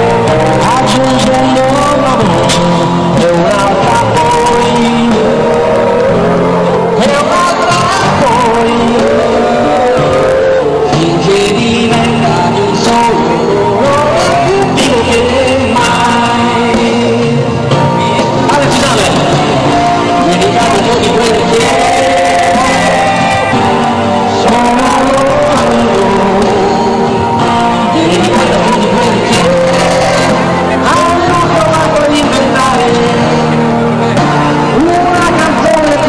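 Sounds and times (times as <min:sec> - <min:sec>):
live band dance music: 0:00.0 - 0:36.0
person singing: 0:00.0 - 0:36.0.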